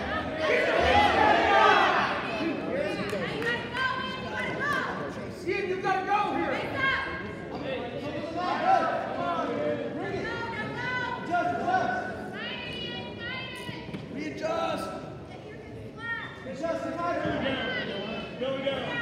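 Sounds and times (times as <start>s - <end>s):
people shouting: 0.0s - 2.5s.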